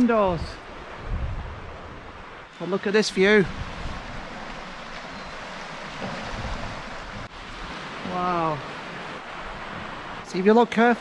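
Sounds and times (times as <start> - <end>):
wind rumbling on microphone: 0.0 - 10.2
sea surf on rocks: 0.0 - 11.0.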